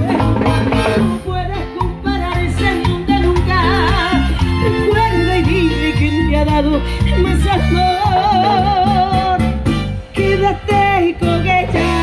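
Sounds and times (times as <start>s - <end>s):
bass and guitar: 0.0s - 12.0s.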